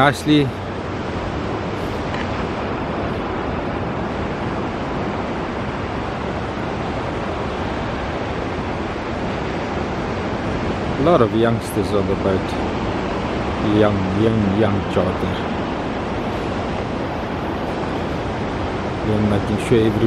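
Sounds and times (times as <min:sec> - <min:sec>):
surf: 0:00.0 - 0:20.0
wind: 0:00.0 - 0:20.0.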